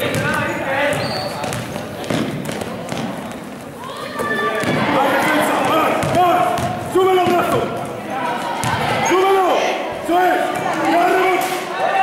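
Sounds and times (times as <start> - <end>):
basketball bouncing on court: 0.0 - 3.5, 4.6 - 5.0, 5.6 - 7.8, 8.6 - 9.0
voices shouting: 3.8 - 12.0.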